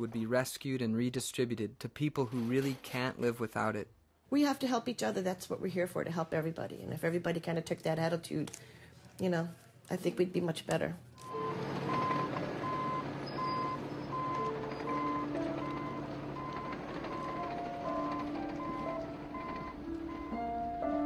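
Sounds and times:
back-up alarm beeping: 11.2s - 21.0s
bulldozer engine rumble: 11.2s - 21.0s.

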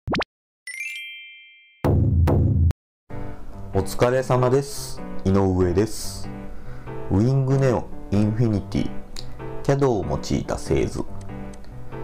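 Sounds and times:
bright chime: 0.7s - 1.8s.

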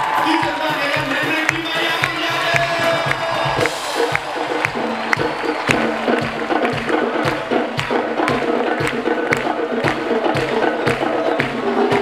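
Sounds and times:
live band playing upbeat song: 0.0s - 12.0s
hand percussion and timbale hits: 0.4s - 12.0s.

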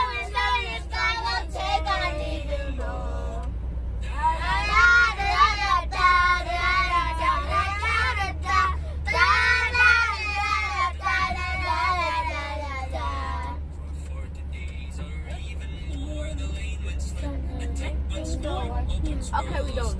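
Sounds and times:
girls singing along: 0.0s - 3.5s, 4.1s - 13.6s
van low rumble: 0.0s - 19.9s.

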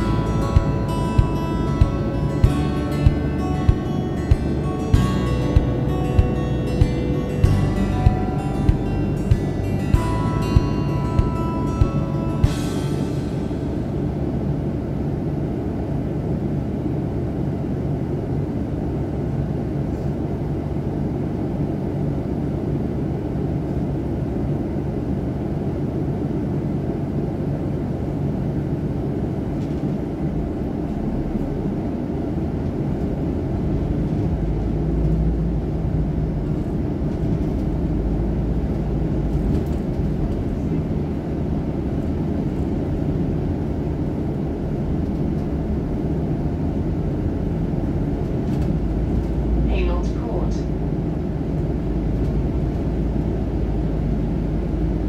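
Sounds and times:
bus engine rumbling: 0.0s - 55.0s.

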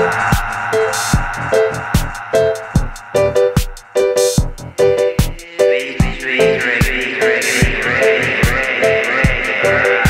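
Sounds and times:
offbeat synth chord stabs: 0.0s - 9.8s
electronic dub groove: 0.0s - 10.0s
held high synth line: 0.0s - 10.0s.

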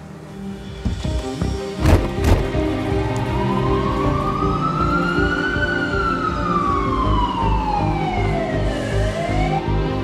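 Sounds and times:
ambulance siren wailing: 2.3s - 10.0s.

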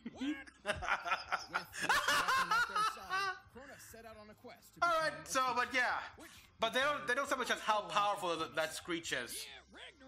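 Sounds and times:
man laughing: 0.0s - 3.4s.

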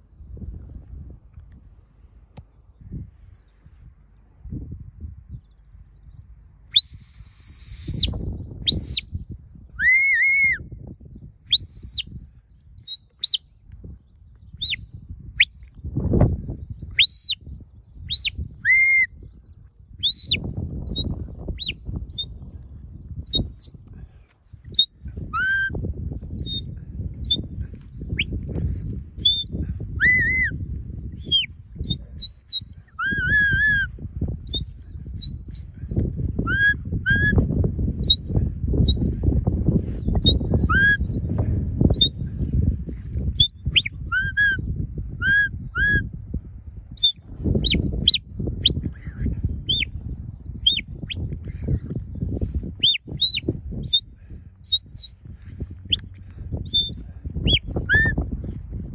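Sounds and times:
shepherd's whistle commands: 6.8s - 8.1s, 9.8s - 10.6s, 17.0s - 17.4s, 18.1s - 19.1s, 24.8s - 25.7s, 29.2s - 30.5s, 36.4s - 37.4s, 40.2s - 41.0s, 43.4s - 44.6s, 45.2s - 46.0s, 56.7s - 58.2s.

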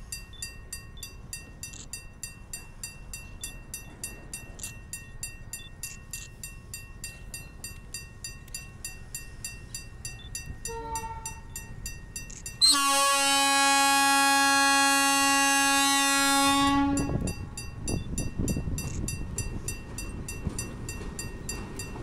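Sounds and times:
crossing warning bell ringing: 0.0s - 22.0s
locomotive air horn blast: 10.7s - 11.5s, 12.6s - 17.2s.

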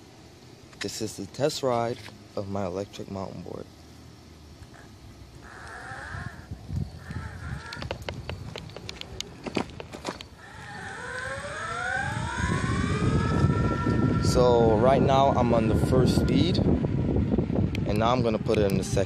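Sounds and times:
electric motors whining: 4.6s - 19.0s
tyres rumbling on pavement: 5.3s - 11.1s.

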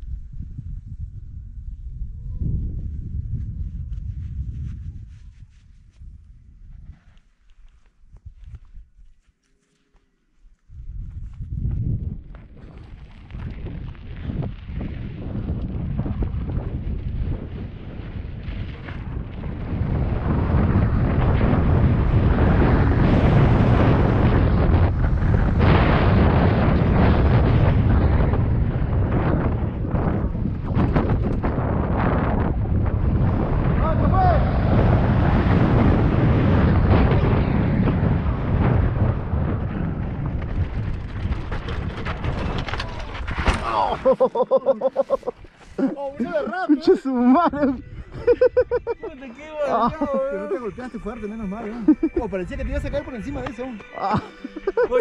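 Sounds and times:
wind buffeting microphone: 0.0s - 9.1s, 10.6s - 53.8s
bike tyres rattling over gravel: 11.0s - 45.8s
sharp knocks of bike crash: 40.4s - 44.0s
person crying out: 43.6s - 45.2s.

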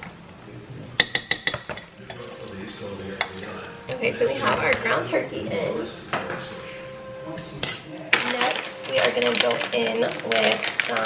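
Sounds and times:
plastic bag crinkling: 8.1s - 11.0s.

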